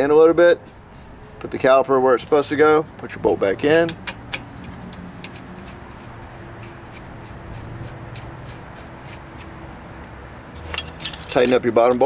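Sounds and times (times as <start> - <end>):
hands rubbing: 4.5 - 10.7.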